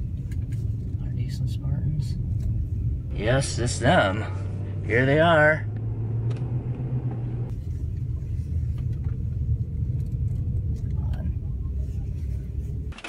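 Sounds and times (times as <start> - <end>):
car interior engine and road rumble: 0.0 - 13.0.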